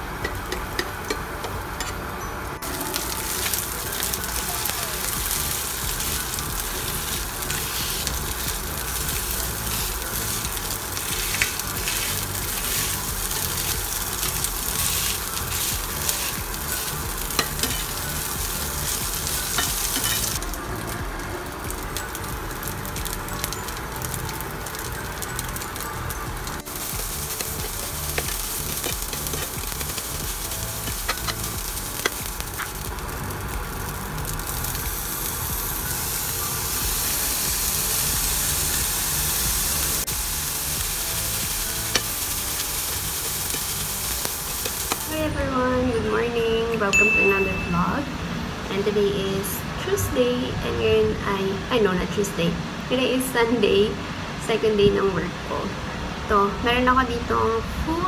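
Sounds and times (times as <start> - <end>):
rice sizzling in frying pan: 0.0 - 2.0, 2.6 - 45.4
spatula scraping pan: 9.0 - 20.4.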